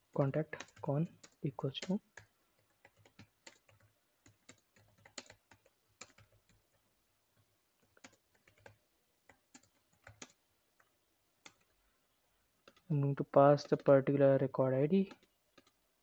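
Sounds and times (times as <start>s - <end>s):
computer keyboard typing: 0.1s - 6.8s, 7.8s - 11.8s, 12.6s - 12.9s, 13.5s - 14.0s, 15.1s - 15.8s.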